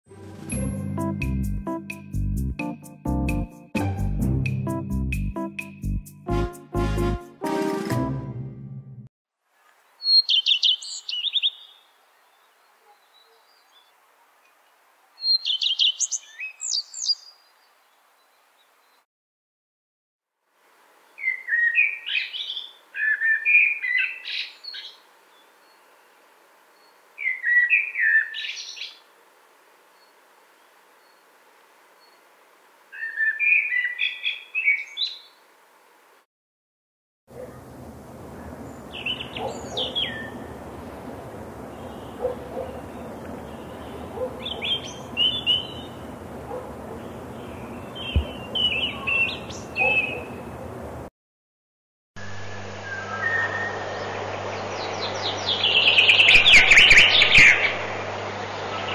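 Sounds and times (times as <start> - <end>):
blackbird singing: 10.0 - 11.8, 15.2 - 17.3, 21.2 - 25.0, 33.0 - 35.2, 38.4 - 40.5, 41.7 - 50.5, 54.6 - 57.7
background hiss: 24.2 - 33.5
brief low thump: 48.1 - 48.5.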